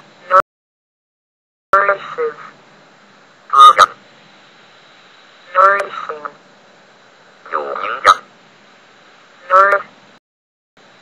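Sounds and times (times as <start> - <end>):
synthetic text-to-speech voice: 1.8 - 2.5, 3.5 - 4.0, 5.5 - 6.4, 7.5 - 8.2, 9.4 - 9.9
faint steady hiss: 1.8 - 10.2, 10.8 - 11.0.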